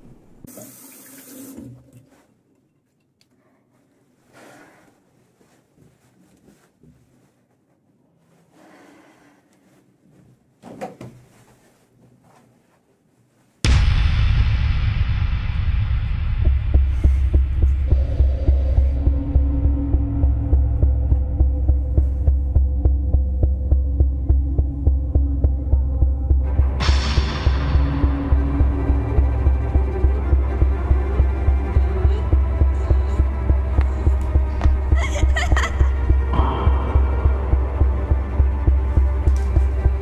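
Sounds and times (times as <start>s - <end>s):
deep throbbing drone: 13.7s - 40.0s.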